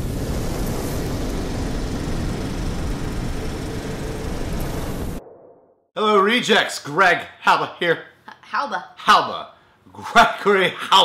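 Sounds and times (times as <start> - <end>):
loud steady rumbling: 0.0 - 5.2.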